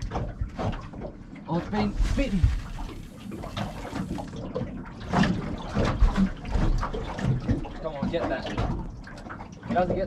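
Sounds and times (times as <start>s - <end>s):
water slapping against boat hull: 0.0s - 10.0s.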